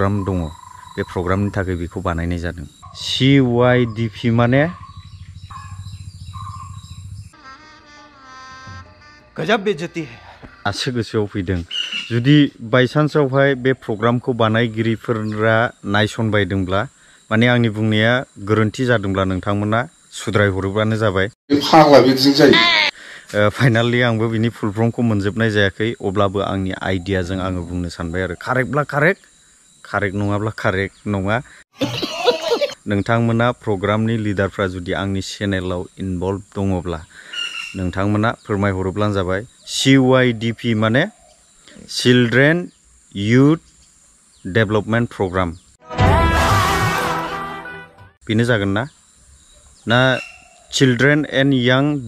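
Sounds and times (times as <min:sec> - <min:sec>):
man talking: 0:00.0 - 0:04.8, 0:09.4 - 0:29.2, 0:29.9 - 0:31.5, 0:32.7 - 0:37.1, 0:37.8 - 0:41.1, 0:41.8 - 0:43.6, 0:44.5 - 0:45.6, 0:48.2 - 0:48.9, 0:49.9 - 0:52.0
insects chirping and buzzing: 0:00.0 - 0:45.8, 0:48.2 - 0:52.0.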